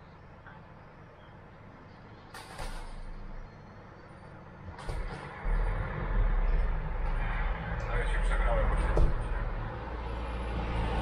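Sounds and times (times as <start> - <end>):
car engine and road hum: 2.4 - 11.0.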